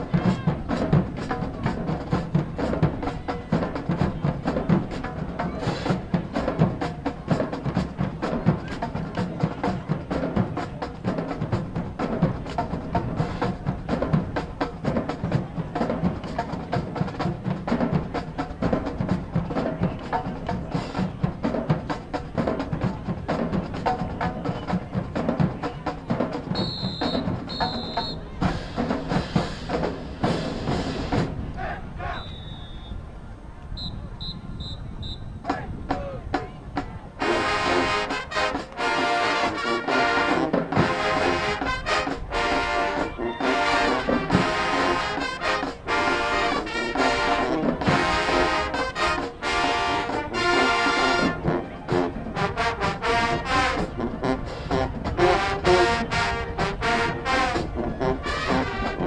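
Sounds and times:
drums: 0.0s - 59.0s
marching band winds: 0.0s - 59.0s
timpani: 37.2s - 59.0s.

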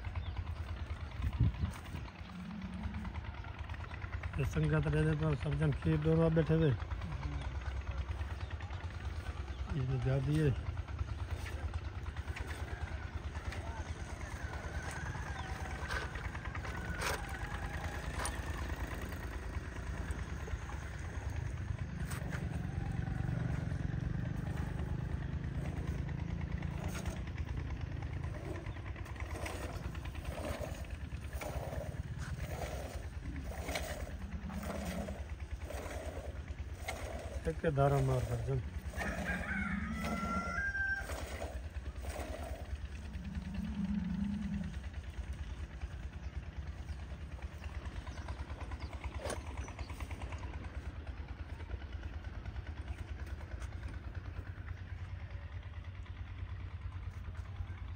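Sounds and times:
small engine running: 0.0s - 57.9s.

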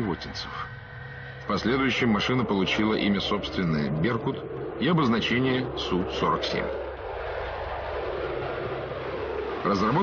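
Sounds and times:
jet engine rushing: 0.0s - 10.0s.

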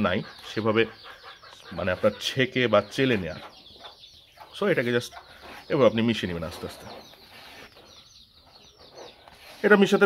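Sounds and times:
man speaking: 9.6s - 10.0s.

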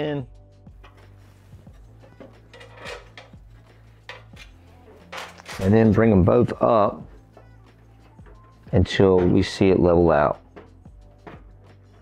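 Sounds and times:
quiet background music: 0.0s - 12.0s.

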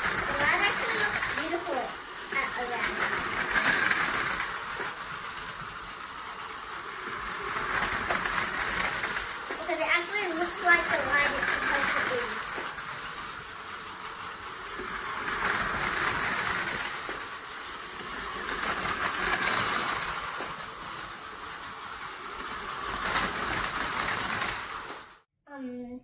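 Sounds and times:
toy trains whirring on track: 0.0s - 25.3s.

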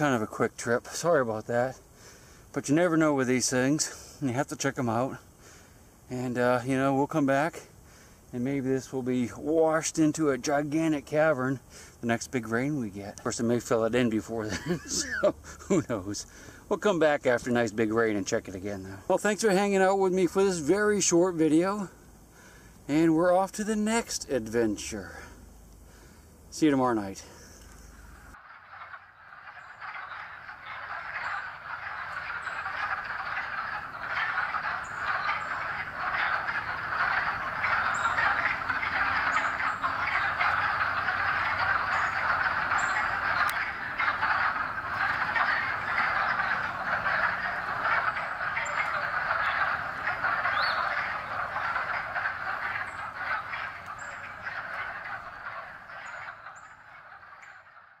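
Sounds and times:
chorus of calling animals: 28.0s - 58.0s.

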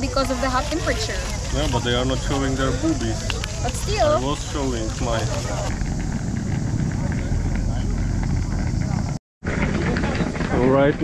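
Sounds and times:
heavy low rumble: 0.1s - 11.0s.

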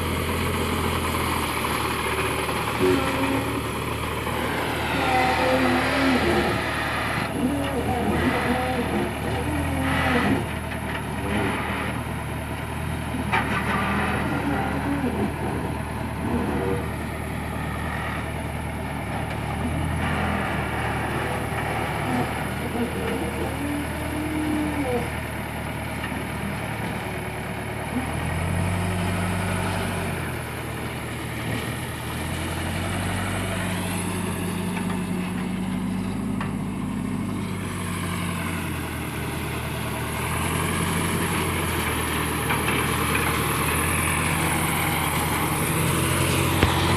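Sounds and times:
heavy diesel engines running: 0.0s - 46.9s.

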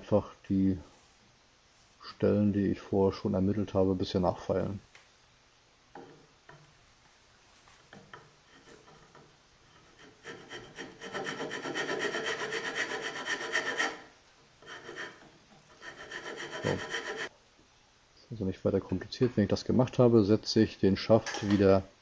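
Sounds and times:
file rasping on wood: 8.5s - 17.3s.

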